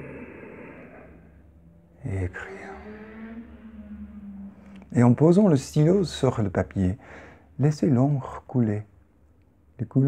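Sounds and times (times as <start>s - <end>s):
man breathing softly: 7.0s - 7.6s.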